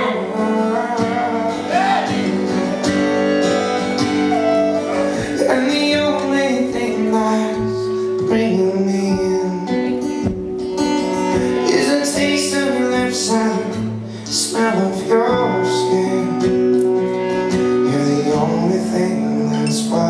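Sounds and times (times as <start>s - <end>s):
strummed acoustic guitar: 0.0s - 20.0s.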